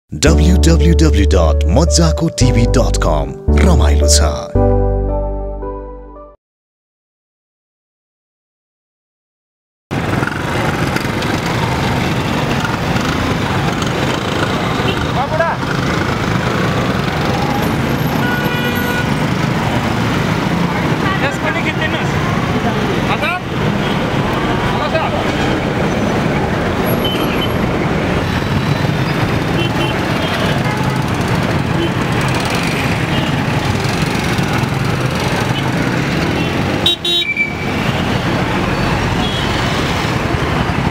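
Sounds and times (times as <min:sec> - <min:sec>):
traffic din: 0:00.1 - 0:05.3, 0:09.9 - 0:40.9
vehicle horn toots: 0:18.0 - 0:19.2, 0:29.6 - 0:30.8, 0:36.4 - 0:37.6, 0:39.2 - 0:39.9.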